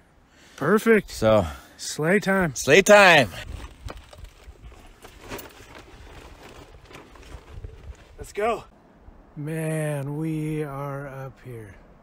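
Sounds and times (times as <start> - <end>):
bag knocking and rustling: 3.4 - 8.2
footsteps on dirt and needles: 3.4 - 8.4.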